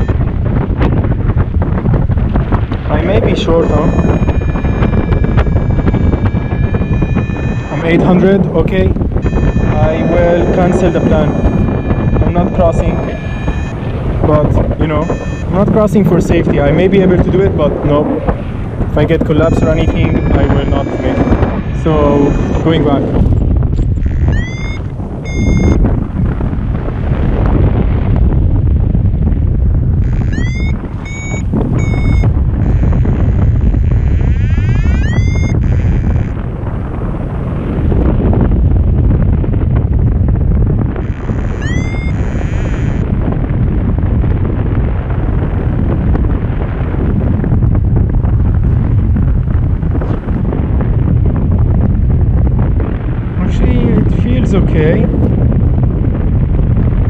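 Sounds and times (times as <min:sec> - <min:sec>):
wind rushing over microphone: 0:00.0 - 0:57.0
rising electronic chirps: 0:03.6 - 0:08.0, 0:09.2 - 0:13.8, 0:15.0 - 0:15.5, 0:19.4 - 0:22.7, 0:24.0 - 0:25.8, 0:30.0 - 0:33.1, 0:33.8 - 0:36.3, 0:41.0 - 0:43.0.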